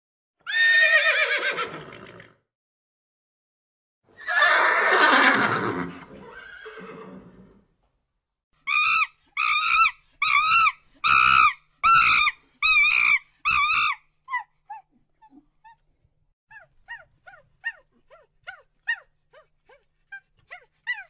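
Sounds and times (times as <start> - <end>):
horse whinnying: 0.4 - 2.4, 4.2 - 7.6.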